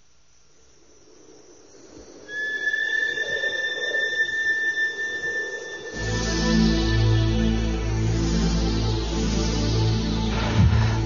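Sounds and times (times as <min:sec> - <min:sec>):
electronic hiss: 0:00.0 - 0:11.0
high synthesized tone: 0:02.3 - 0:11.0.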